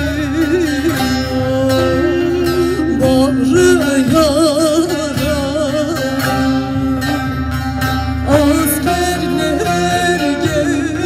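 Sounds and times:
woman singing folk song: 0:00.0 - 0:07.4, 0:08.2 - 0:11.0
plucked strings: 0:00.0 - 0:11.0.

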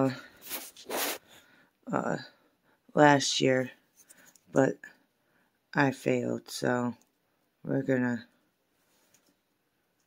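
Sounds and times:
person speaking: 0:00.0 - 0:01.2, 0:01.8 - 0:03.8, 0:04.4 - 0:05.0, 0:05.8 - 0:08.4.

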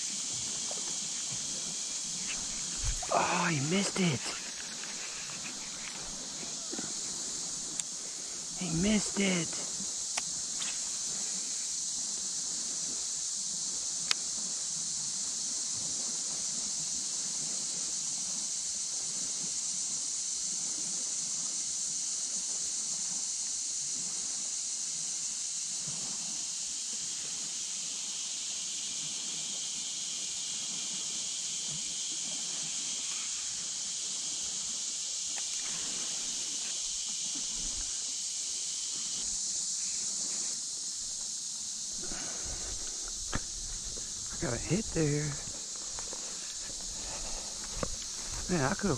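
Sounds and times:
rustles and knocks in reeds: 0:00.0 - 0:03.5
high-pitched insect chorus: 0:00.0 - 0:48.9
lower insect drone: 0:00.0 - 0:48.9.

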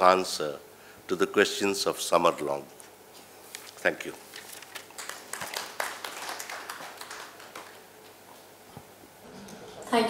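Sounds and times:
audience applause: 0:04.9 - 0:08.0.

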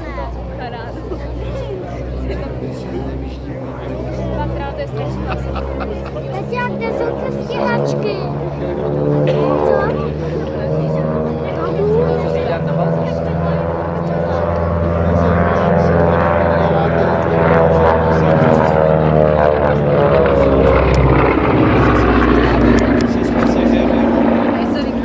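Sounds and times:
propeller aircraft droning flypast: 0:00.0 - 0:25.0.

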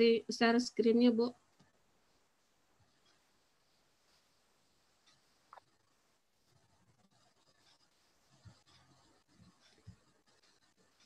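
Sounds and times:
faint rustles: 0:01.6 - 0:11.0.

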